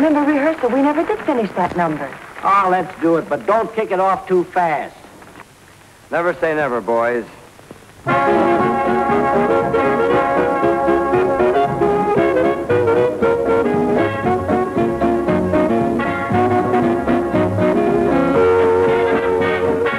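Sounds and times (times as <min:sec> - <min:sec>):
big band playing: 0:08.0 - 0:19.9
brass and trombone melody: 0:08.0 - 0:19.9.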